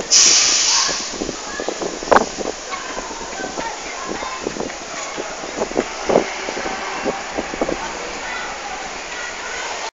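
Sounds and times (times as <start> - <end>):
short irregular street sounds: 0.0 - 9.9
traffic hum: 0.0 - 9.9.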